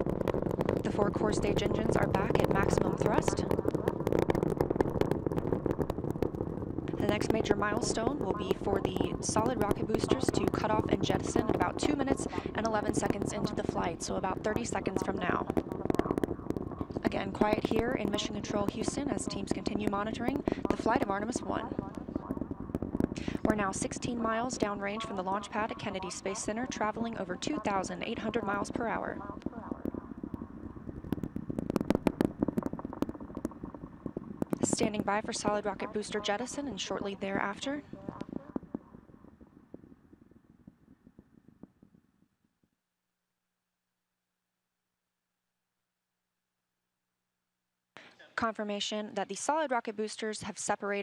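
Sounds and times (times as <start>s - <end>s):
rocket engines rumbling and crackling: 0.0s - 42.1s.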